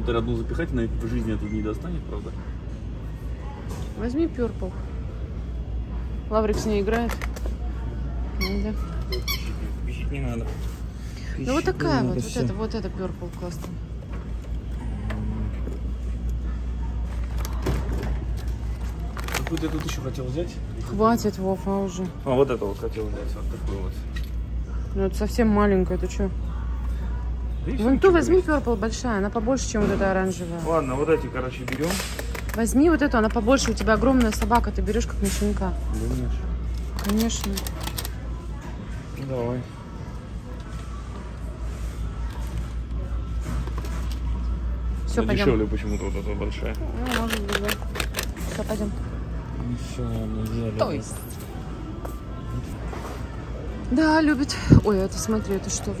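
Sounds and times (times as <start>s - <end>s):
faint background music: 0.0s - 56.0s
shop background rumble: 0.0s - 56.0s
plastic packaging rustle: 17.2s - 20.2s.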